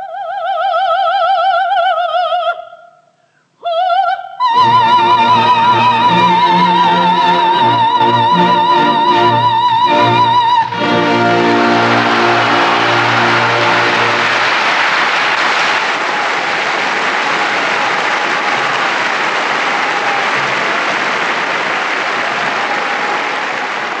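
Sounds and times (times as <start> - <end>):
audience applauding: 4.6 - 24.0
orchestra holding final chord: 8.1 - 14.8.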